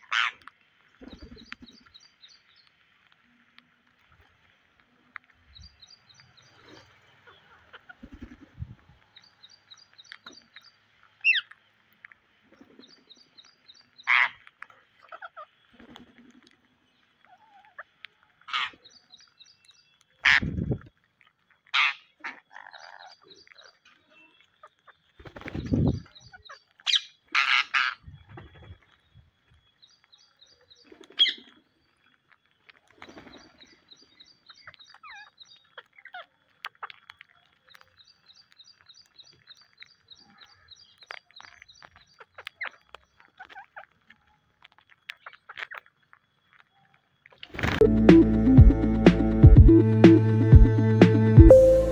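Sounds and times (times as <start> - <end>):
parakeets shrill calls: 0.0 - 0.5, 9.2 - 11.5, 13.8 - 14.4, 18.5 - 20.4, 21.8 - 28.0
bumps and flutters at microphone: 8.0 - 9.0, 20.3 - 20.9, 25.4 - 26.2.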